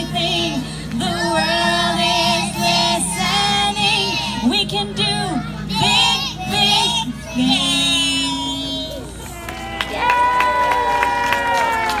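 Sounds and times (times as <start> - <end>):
audience cheering: 9.4 - 12.0.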